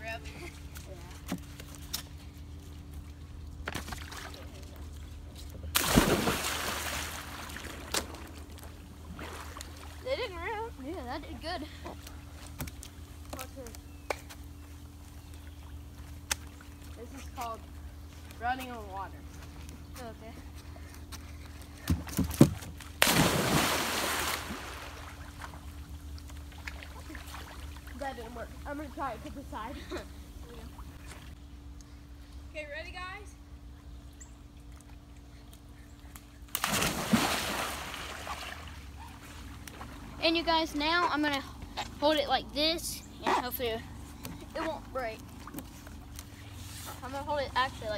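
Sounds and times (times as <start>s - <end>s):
steady low hum: 0.0s - 47.9s
water churning and sloshing: 2.6s - 11.0s, 22.0s - 29.7s, 36.5s - 41.3s
person splashing into pool: 5.7s - 8.3s, 23.0s - 25.3s, 36.6s - 38.8s.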